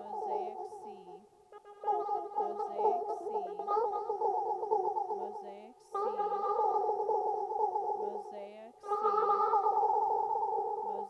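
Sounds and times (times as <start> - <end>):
fluttering looped voice drone: 0.0 - 7.2, 7.9 - 11.0.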